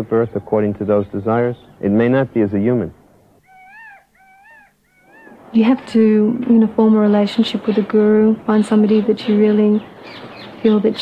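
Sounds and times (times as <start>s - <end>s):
macaque coo calls: 3.4s - 6.0s.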